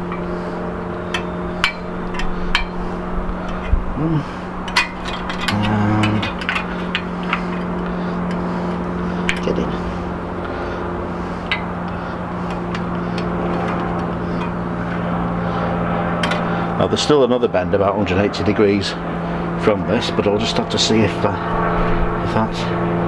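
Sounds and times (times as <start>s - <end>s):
low engine-like drone: 0.0s - 23.0s.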